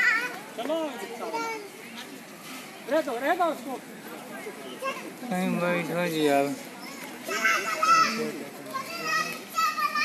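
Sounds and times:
children talking and calling out: 0.0s - 2.9s, 4.4s - 5.9s, 6.5s - 10.0s.

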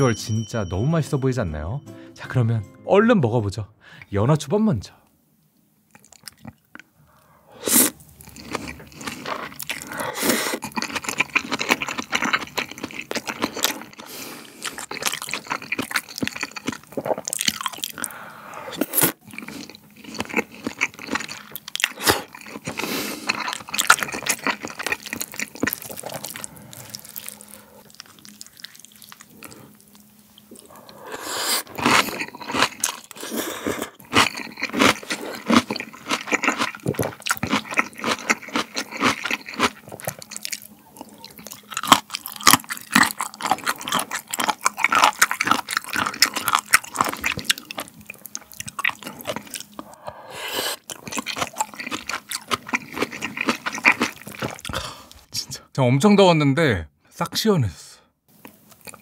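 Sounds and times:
chewing sushi: 5.8s - 55.3s, 58.4s - 59.0s
slurping soup: 30.4s - 40.3s, 48.8s - 55.2s
crunchy bites: 31.6s - 50.0s.

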